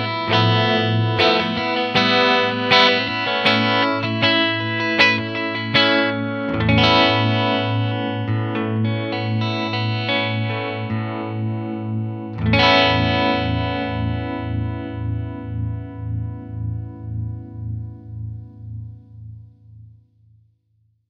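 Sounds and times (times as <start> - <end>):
electric guitar tremolo chords: 0.0 - 19.5.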